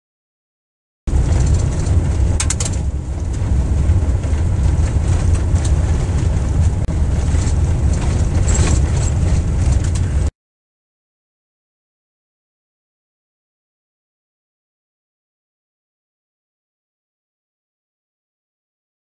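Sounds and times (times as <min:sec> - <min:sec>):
road noise: 0:01.1 - 0:10.3
wind buffeting microphone: 0:01.1 - 0:10.3.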